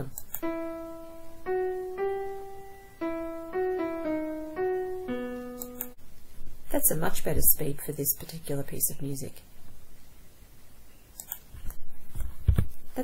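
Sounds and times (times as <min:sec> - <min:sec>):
piano melody: 0:00.4 - 0:06.0.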